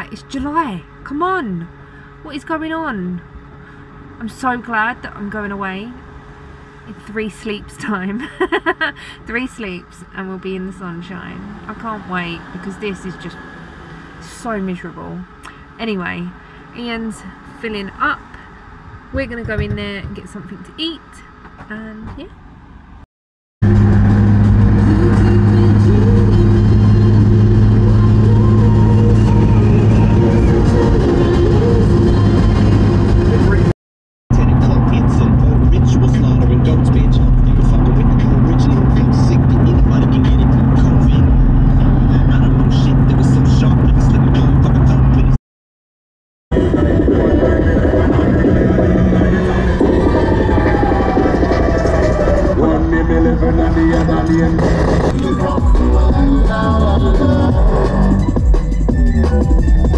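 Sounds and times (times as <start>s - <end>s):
car engine and road drone: 0.0s - 45.4s, 46.5s - 59.9s
music in car: 23.6s - 33.7s, 34.4s - 45.3s, 46.6s - 59.9s.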